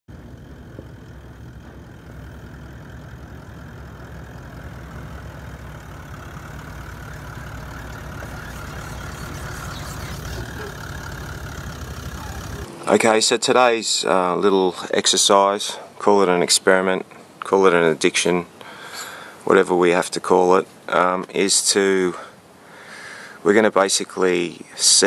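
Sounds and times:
diesel truck engine rumbling: 0.1s - 13.8s.

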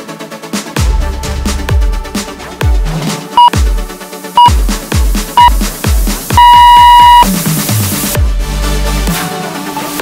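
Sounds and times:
workout timer beeps: 6.4s - 7.3s.

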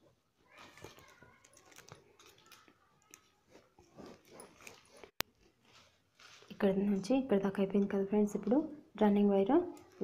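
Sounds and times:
plastic wire rustling and clicking: 0.4s - 6.6s.

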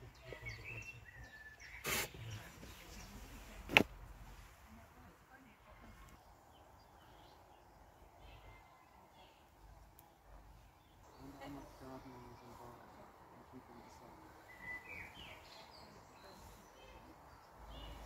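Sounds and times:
faint distant voices: 0.0s - 18.0s
faint bird chirps: 0.1s - 3.3s, 5.7s - 12.7s, 13.7s - 18.0s.

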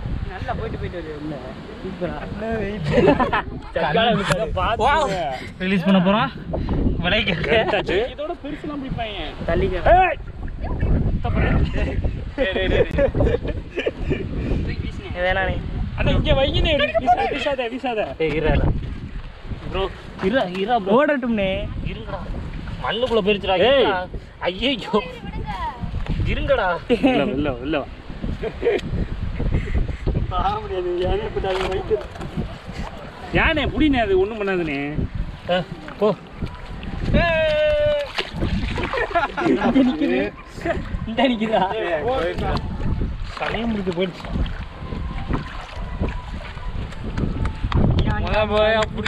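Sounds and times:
wind buffeting microphone: 0.0s - 49.0s
voices: 30.4s - 49.0s
water splashing from wading: 30.6s - 33.3s, 34.4s - 41.5s, 42.2s - 47.9s.

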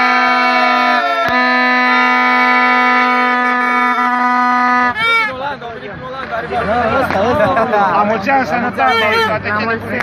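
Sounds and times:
accordion playing held chords: 0.0s - 5.4s.

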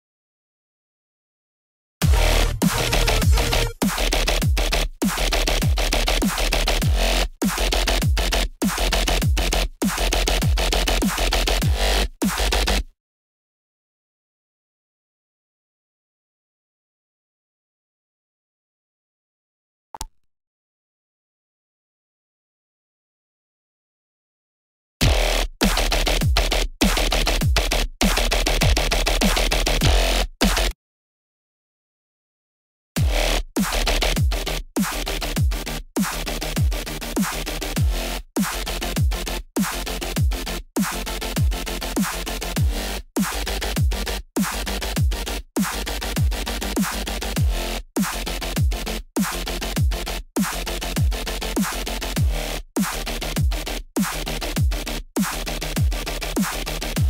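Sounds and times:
pitch-dropping kick drums: 2.0s - 6.0s, 37.8s - 38.0s, 39.0s - 39.2s, 40.2s - 40.4s, 41.4s - 41.6s, 42.6s - 51.2s, 53.4s - 56.0s
heavy synth bass: 2.0s - 12.8s, 33.0s - 57.0s
dubstep synth bass stabs: 2.1s - 8.3s.

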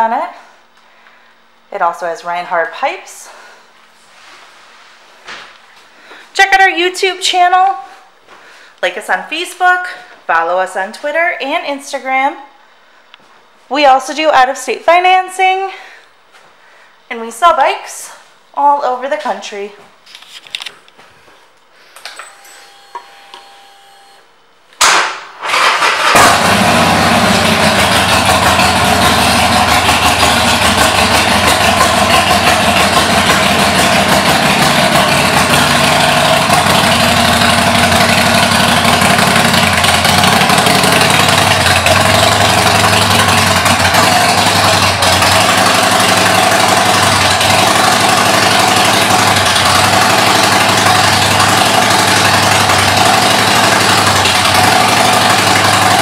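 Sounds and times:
motorcycle engine starting and idling: 25.4s - 56.0s.

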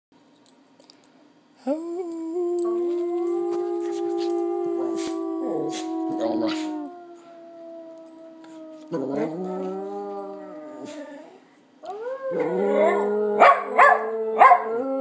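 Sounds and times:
person howling: 1.6s - 15.0s
dog howling: 2.2s - 15.0s.

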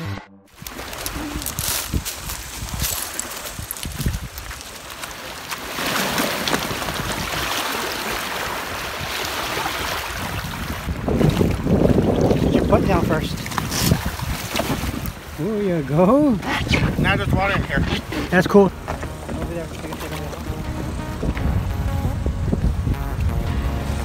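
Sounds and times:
water churning around kayak: 0.5s - 24.0s
wind buffeting microphone: 0.6s - 4.7s, 6.6s - 7.6s, 8.5s - 24.0s
waves washing onto gravel: 0.6s - 11.9s.

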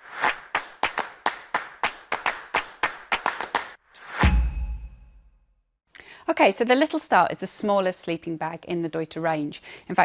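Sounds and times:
rhythmic hand claps: 0.2s - 3.8s.

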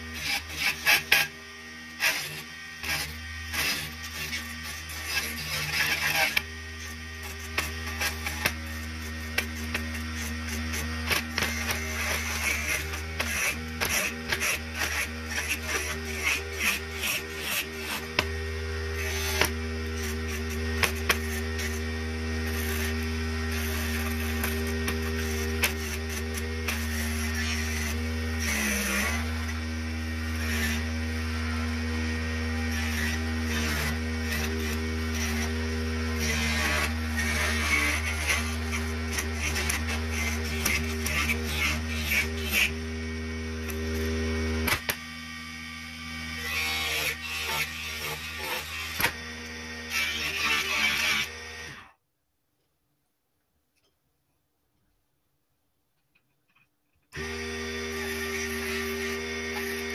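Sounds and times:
chisel scraping spinning wood: 0.0s - 44.9s.

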